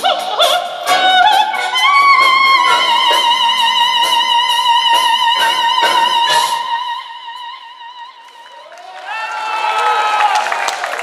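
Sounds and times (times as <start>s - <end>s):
woman singing operetta: 0.0s - 8.5s.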